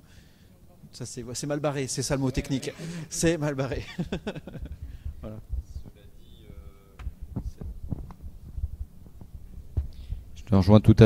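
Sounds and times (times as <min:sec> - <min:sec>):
microphone handling thumps: 0:04.4 - 0:06.0, 0:06.9 - 0:10.5.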